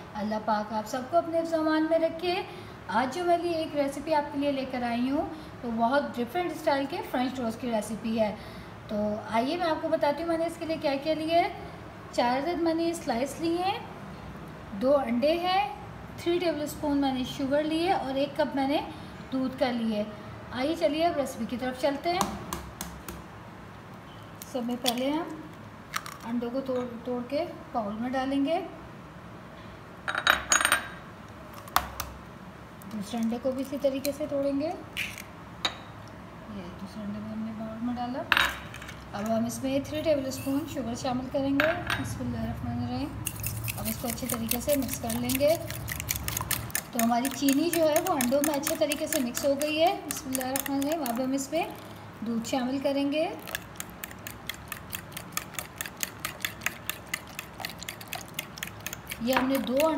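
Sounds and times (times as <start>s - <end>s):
fork beating eggs in a bowl: 43.2s - 52.0s, 53.3s - 59.9s.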